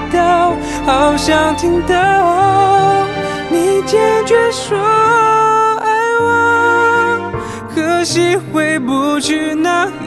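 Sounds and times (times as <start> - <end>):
man singing pop ballad: 0.0 - 10.0
soft backing music: 0.0 - 10.0.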